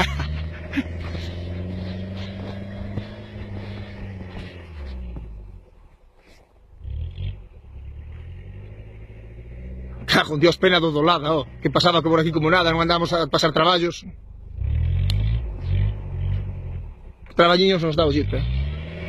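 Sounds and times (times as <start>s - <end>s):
engine running under load: 0.0s - 5.9s.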